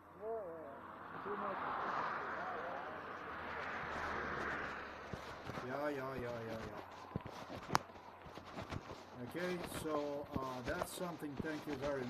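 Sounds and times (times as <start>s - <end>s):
car passing by: 0.0s - 7.1s
faint men talking: 0.1s - 3.2s, 5.6s - 6.8s, 9.2s - 12.0s.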